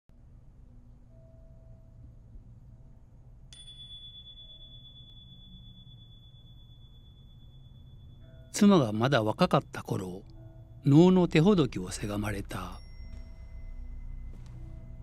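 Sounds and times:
low steady hum: 0.1s - 15.0s
high bell-like tone ringing: 1.1s - 2.2s, 2.8s - 15.0s.

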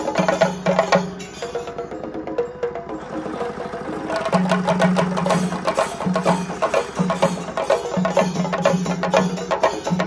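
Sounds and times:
barrel drums beaten fast: 0.0s - 10.0s.

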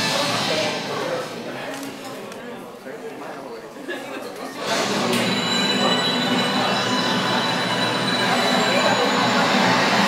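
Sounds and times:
loud rushing noise: 0.0s - 1.6s.

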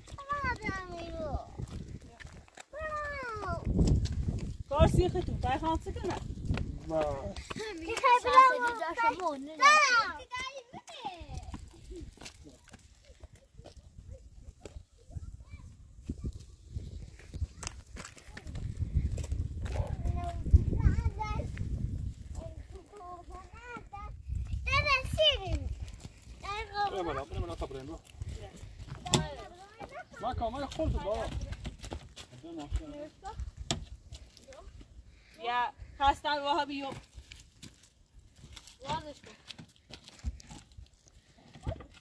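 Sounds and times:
footsteps on stony ground: 0.0s - 15.0s, 15.6s - 35.3s, 36.1s - 42.0s
child's high voice: 0.1s - 1.7s, 2.7s - 3.7s, 7.7s - 11.5s, 14.1s - 16.4s, 19.8s - 21.6s, 22.4s - 25.8s, 29.1s - 30.2s
people talking: 7.0s - 11.6s.

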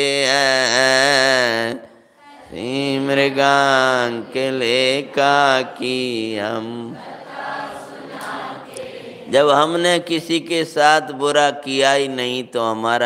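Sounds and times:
man chanting: 0.0s - 7.0s, 9.3s - 13.0s.

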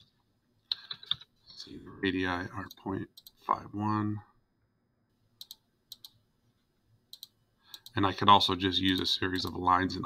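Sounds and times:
computer mouse clicks: 5.4s - 6.2s, 7.1s - 8.0s.

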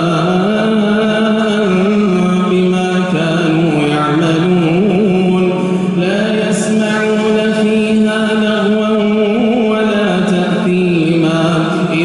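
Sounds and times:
man chanting recitation: 0.0s - 12.0s.

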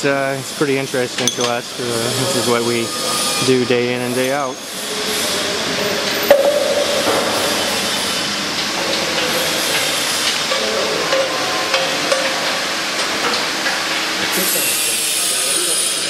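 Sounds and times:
faint hum: 6.2s - 8.5s
sharp knock: 6.3s - 7.9s.

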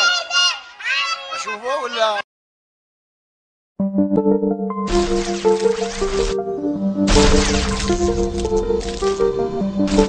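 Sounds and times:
noisy percussive bursts: 7.1s - 10.0s.

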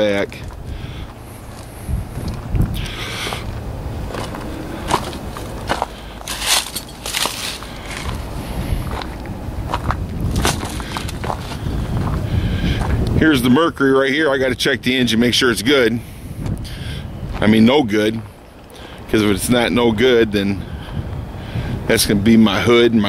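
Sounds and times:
footsteps on leaves and gravel: 0.3s - 13.0s
low rumble: 0.4s - 13.8s.

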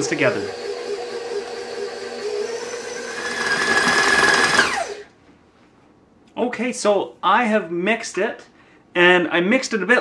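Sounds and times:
motor winding down whine: 0.0s - 5.1s
stand mixer running: 0.0s - 5.1s.

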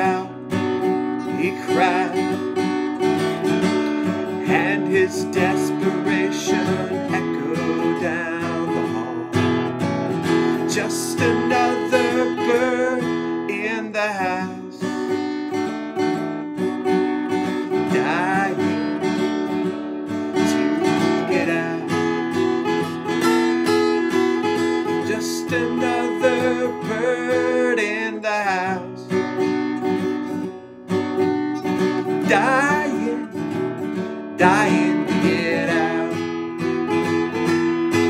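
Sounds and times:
man singing: 0.0s - 15.2s, 17.4s - 19.5s, 20.1s - 29.2s, 31.6s - 38.0s
acoustic guitar strummed: 0.0s - 38.0s.

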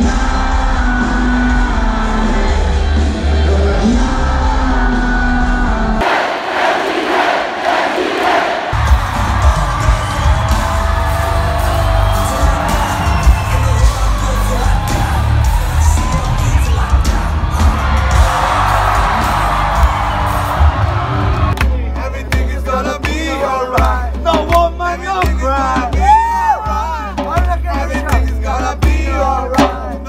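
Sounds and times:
live concert music with heavy bass: 0.0s - 6.2s, 7.6s - 30.0s
crowd cheering and singing along: 0.0s - 30.0s.

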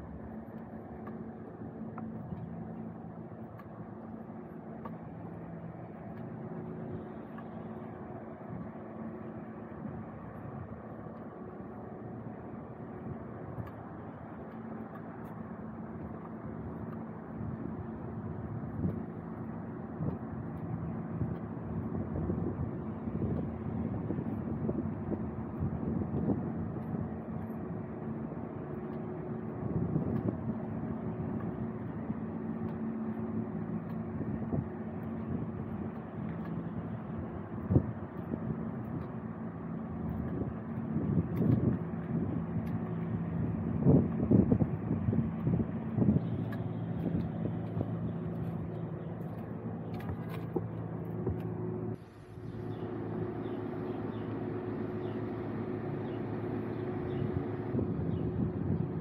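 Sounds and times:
engine hum: 0.0s - 59.0s
road noise: 0.0s - 59.0s
vehicles passing: 30.5s - 59.0s.

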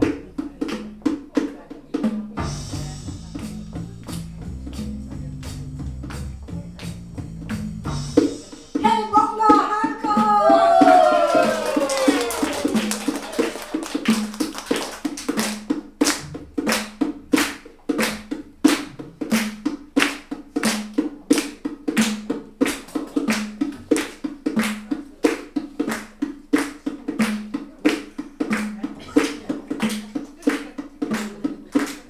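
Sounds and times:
hand clapping: 0.0s - 1.6s, 2.8s - 8.6s, 10.8s - 32.0s.

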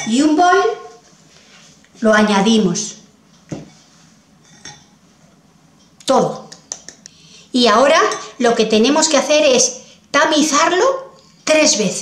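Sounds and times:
glass bowl clinking: 4.4s - 5.0s.

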